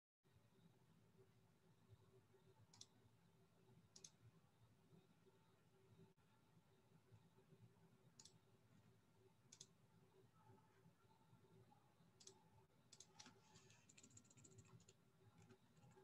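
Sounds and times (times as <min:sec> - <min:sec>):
mouse clicks: 0:02.7 - 0:03.0, 0:03.9 - 0:04.2, 0:09.5 - 0:09.8, 0:12.2 - 0:16.0
computer keyboard typing: 0:12.2 - 0:16.0.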